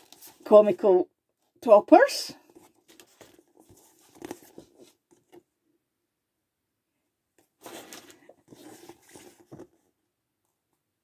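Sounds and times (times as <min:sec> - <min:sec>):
paper cards rustling: 0:00.0 - 0:00.7, 0:02.4 - 0:05.4, 0:07.6 - 0:09.8.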